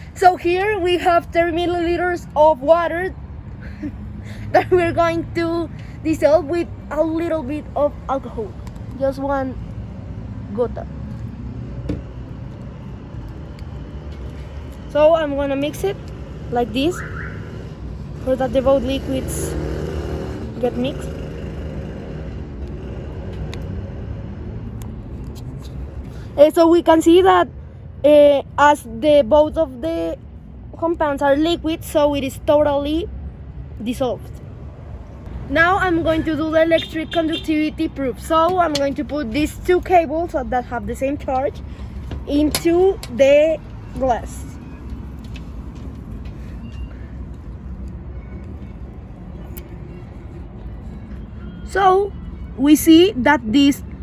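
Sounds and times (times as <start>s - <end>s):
distant road traffic: 0.0s - 54.0s.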